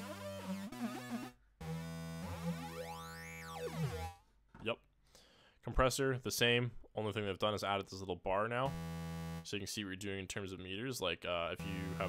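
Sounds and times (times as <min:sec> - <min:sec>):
synthesizer note with sweeping filter: 0:00.0 - 0:04.2, 0:08.7 - 0:09.5, 0:11.6 - 0:12.0.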